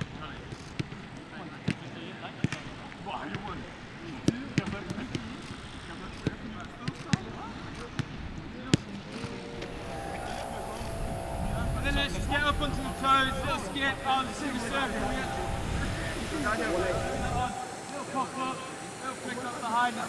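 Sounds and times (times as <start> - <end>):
voices calling: 9.0 - 20.0.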